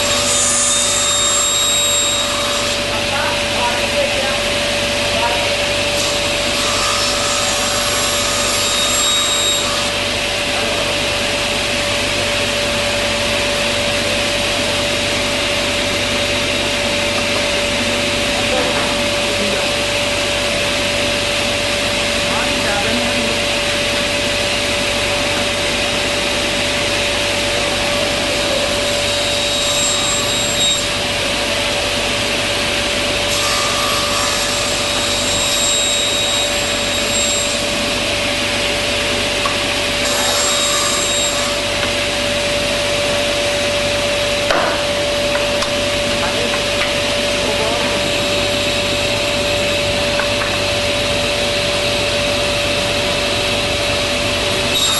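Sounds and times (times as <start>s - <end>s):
table saw running: 0.0s - 54.9s.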